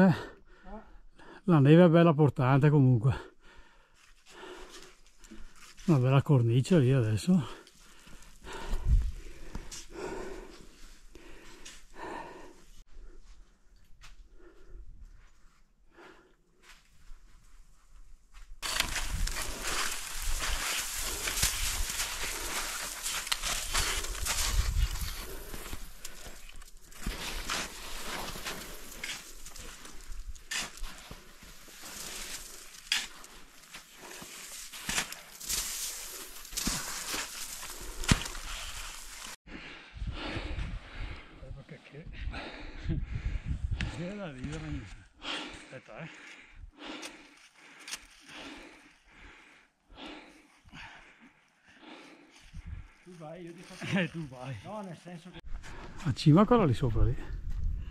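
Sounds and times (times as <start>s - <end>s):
climber breathing hard: 3.3s - 5.7s, 7.4s - 15.2s, 15.8s - 17.4s, 18.6s - 41.4s, 42.0s - 53.2s
ice axe stabbing snow: 18.6s - 25.6s, 26.9s - 39.4s.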